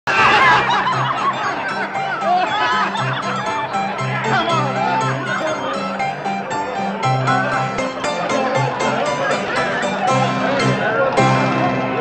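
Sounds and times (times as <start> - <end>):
man laughing loudly: 0.1 - 10.4
crowd voices: 0.1 - 12.0
music with held low notes: 0.4 - 12.0.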